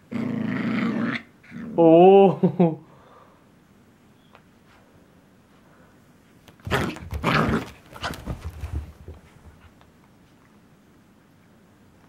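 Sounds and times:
dogs barking and growling: 6.6s - 8.4s.

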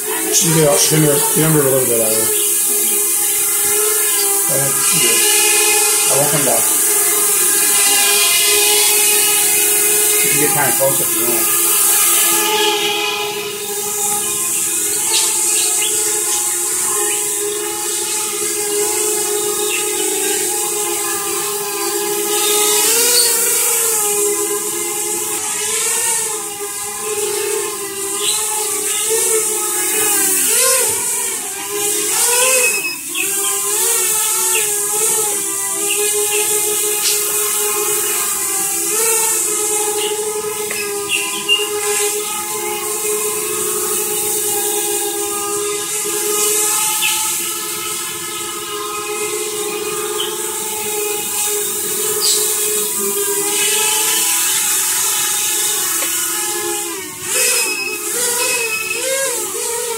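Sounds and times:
quadcopter motors whining: 0.0s - 59.9s.

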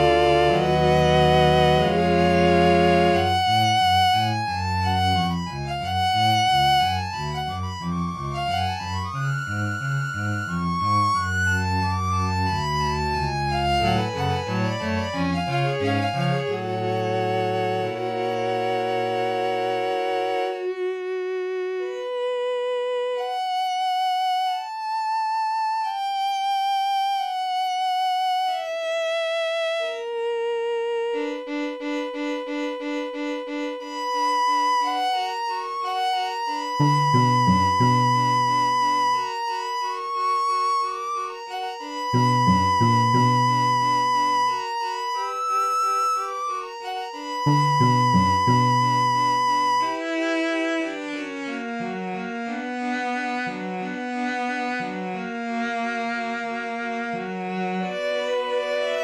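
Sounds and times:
low cello notes: 0.0s - 22.5s, 36.0s - 39.8s, 41.5s - 45.2s, 46.8s - 59.0s
higher strings holding long notes: 0.0s - 23.4s, 31.2s - 59.0s.

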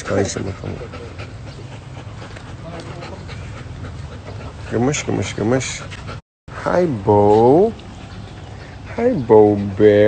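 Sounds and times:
dog panting: 0.0s - 6.2s, 7.0s - 10.0s.

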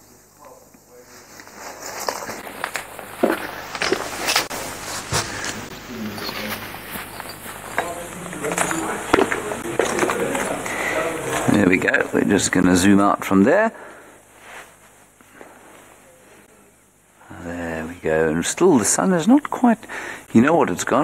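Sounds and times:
indistinct background voices: 0.0s - 14.0s.

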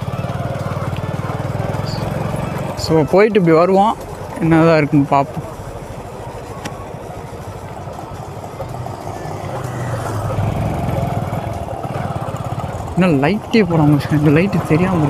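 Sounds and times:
motorcycle engine rumbling: 0.0s - 15.0s.

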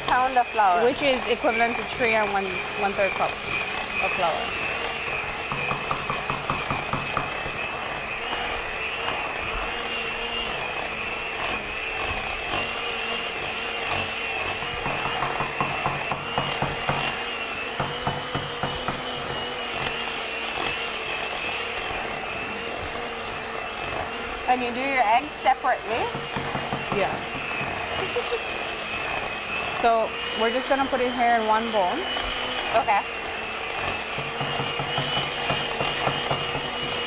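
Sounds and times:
electric hand mixer running: 0.0s - 37.0s.

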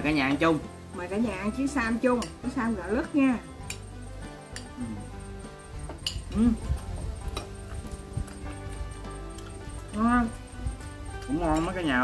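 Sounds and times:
background music with held tones: 0.0s - 12.0s
spoons clicking on ceramic bowls: 5.8s - 6.4s.

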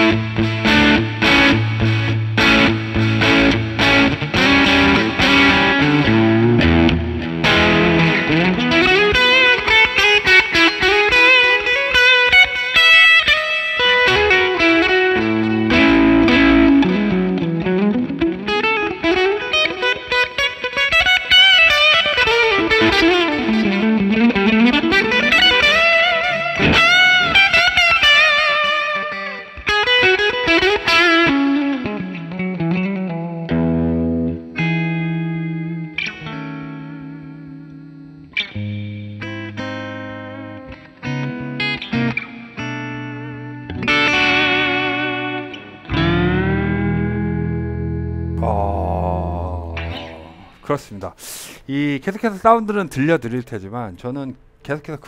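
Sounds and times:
overdriven electric guitar: 0.0s - 48.5s.

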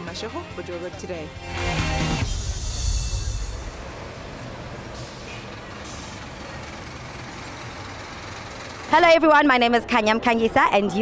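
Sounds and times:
city street traffic rumble: 0.0s - 11.0s
bus driving past: 1.5s - 11.0s
air brake hiss: 5.0s - 6.2s.

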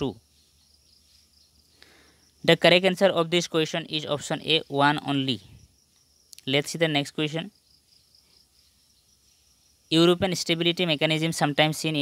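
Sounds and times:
background hiss: 0.0s - 12.0s
man speaking: 2.4s - 5.6s, 9.9s - 12.0s.

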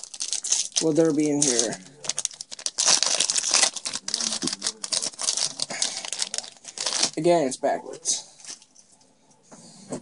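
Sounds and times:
foil wrapper tearing and crinkling: 0.0s - 7.2s.

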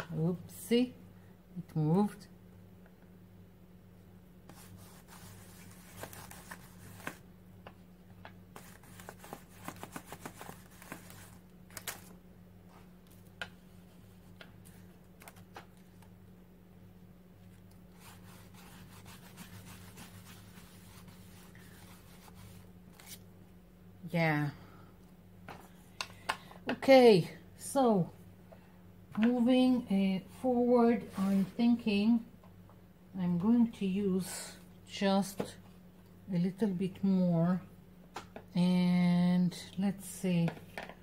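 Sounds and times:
paper taps and rustles: 5.9s - 12.2s.

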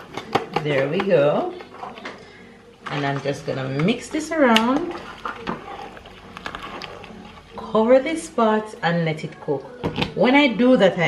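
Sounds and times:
liquid swishing in a pot: 3.4s - 8.8s.

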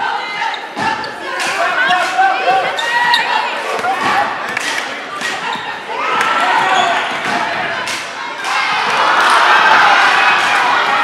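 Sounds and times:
voices of players and crowd: 0.0s - 11.0s.

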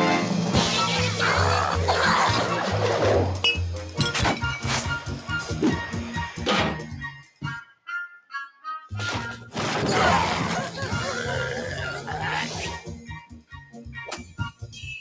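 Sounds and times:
cartoon theme music: 0.0s - 14.9s.

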